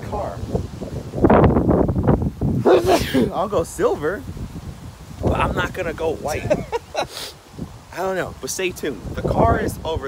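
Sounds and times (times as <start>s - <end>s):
man laughing loudly: 2.6s - 3.4s, 6.2s - 7.3s
short vocal sound: 2.6s - 3.4s.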